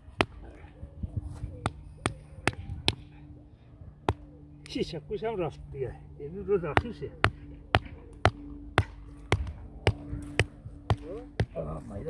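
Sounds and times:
rubber mallet hammering stake: 0:01.6 - 0:03.0, 0:06.7 - 0:11.6.

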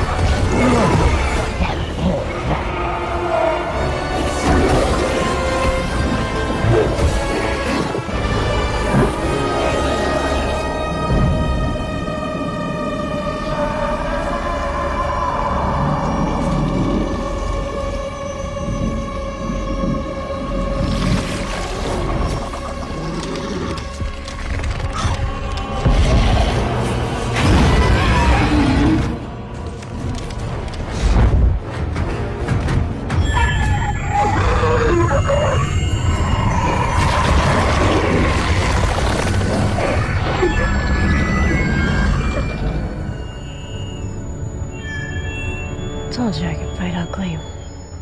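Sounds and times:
dark film score: 0:00.0 - 0:48.0.

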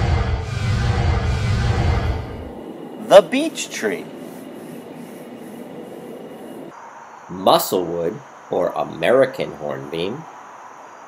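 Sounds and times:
soft background hiss: 0:02.5 - 0:11.0.

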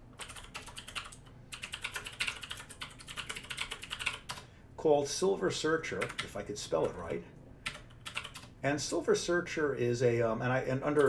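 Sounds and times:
typing on a computer keyboard: 0:00.1 - 0:04.5, 0:06.0 - 0:06.3, 0:07.6 - 0:08.5.

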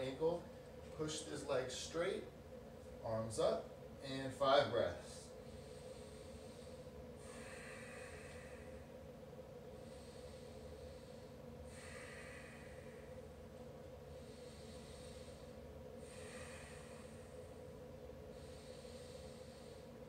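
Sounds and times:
man breathing slowly: 0:05.0 - 0:20.0.

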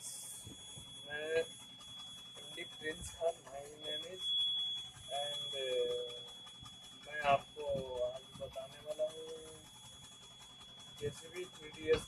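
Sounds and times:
faint high-pitched whine: 0:00.0 - 0:01.5, 0:02.4 - 0:04.4, 0:07.1 - 0:09.6
man humming: 0:01.1 - 0:01.4, 0:05.2 - 0:06.1, 0:07.1 - 0:09.1, 0:11.3 - 0:12.0.

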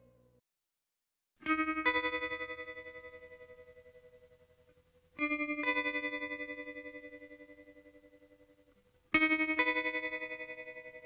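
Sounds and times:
guitar chord with chorus effect: 0:01.4 - 0:11.0.

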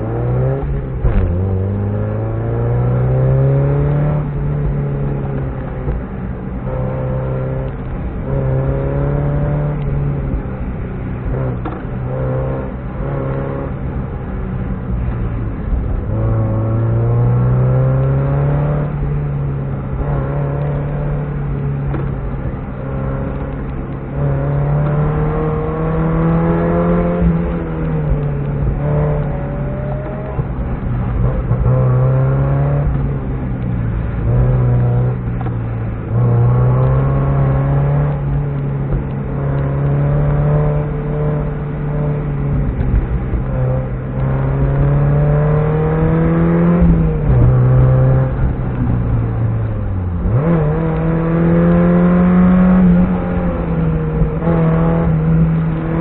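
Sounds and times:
car engine revving: 0:00.0 - 0:56.0.

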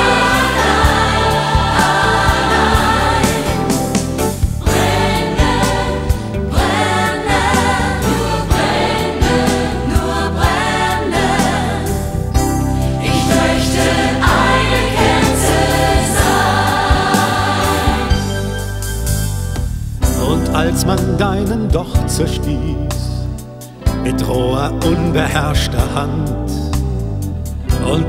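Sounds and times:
choir singing: 0:00.0 - 0:18.9
instrumental accompaniment with beat: 0:00.0 - 0:21.1.

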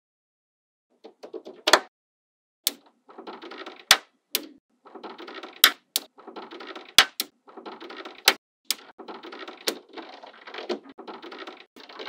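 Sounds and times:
magnetic balls clicking: 0:02.7 - 0:12.0
magnetic balls snapping: 0:05.6 - 0:06.1.

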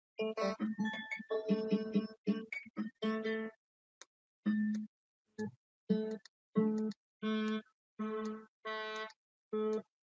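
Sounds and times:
synthesized instrument notes: 0:00.2 - 0:03.6, 0:04.4 - 0:09.9.

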